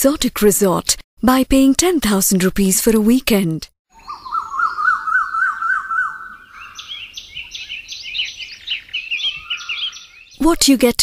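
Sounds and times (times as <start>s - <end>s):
bird warbling trill: 3.9s - 10.4s
quick rising bird chirps: 3.9s - 10.4s.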